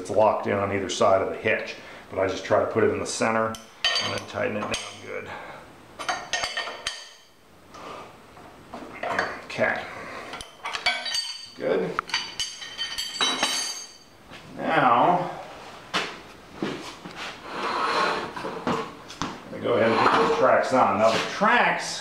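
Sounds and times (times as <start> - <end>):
ratchet clinking on metal: 10.4 - 14.1.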